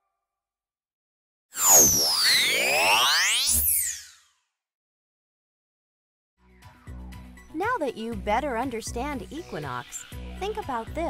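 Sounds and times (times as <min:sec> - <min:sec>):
synthesized swooping tones: 0:01.6 - 0:04.3.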